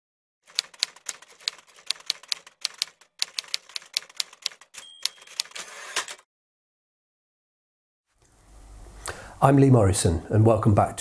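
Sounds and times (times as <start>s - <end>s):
typewriter keys clacking: 0.5s - 6.2s
typewriter bell ring: 4.2s - 6.2s.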